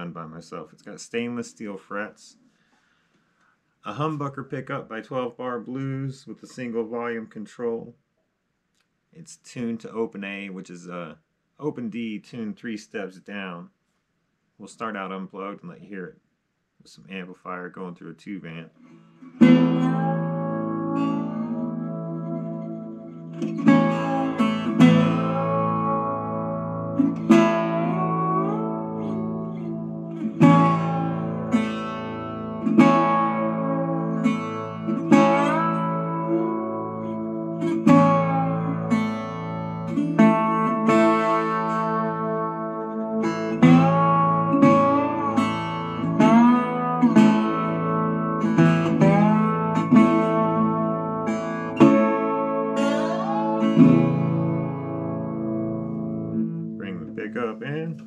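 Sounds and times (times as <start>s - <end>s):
slide resonator guitar: 18.8s - 58.0s.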